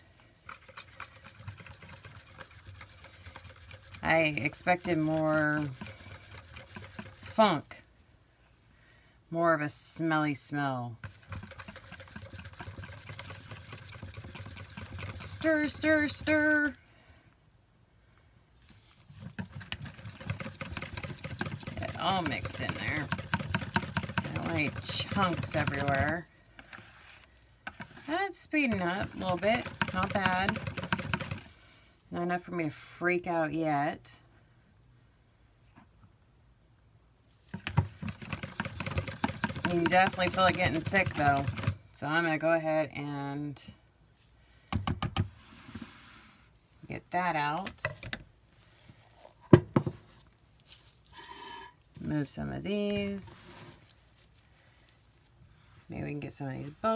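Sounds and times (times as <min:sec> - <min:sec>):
whisk scraping plastic bowl: 0:00.0 - 0:07.6, 0:11.0 - 0:16.8, 0:19.0 - 0:31.6, 0:37.5 - 0:41.8
bowl scraping along countertop: 0:45.4 - 0:46.5, 0:51.0 - 0:51.9.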